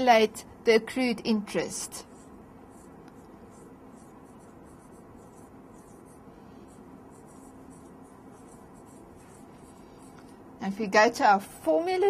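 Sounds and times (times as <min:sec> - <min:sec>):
low room hum: 0:00.0 - 0:12.0
pen scratching on paper: 0:01.9 - 0:10.2.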